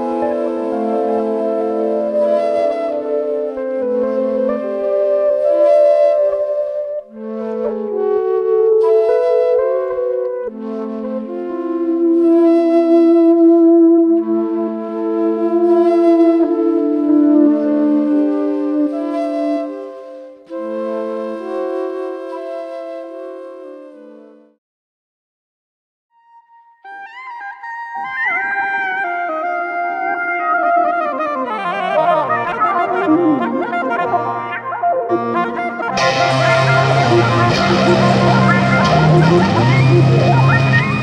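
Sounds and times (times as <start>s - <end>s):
flute long held notes: 0.0s - 24.6s, 26.2s - 41.0s
sustained electric guitar loops: 35.9s - 41.0s.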